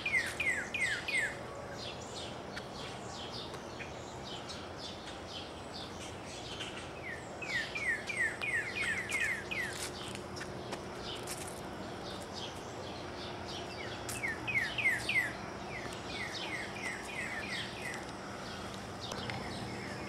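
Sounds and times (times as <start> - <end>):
outdoor background: 0.0 - 20.0
high bird chirps: 12.1 - 20.0.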